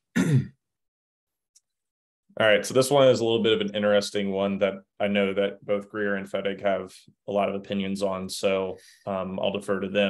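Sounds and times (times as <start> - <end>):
man clearing throat: 0.1 - 0.6.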